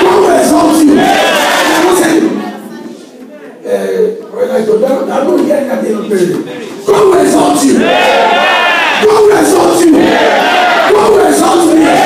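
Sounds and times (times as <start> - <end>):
crowd singing: 7.6 - 12.0.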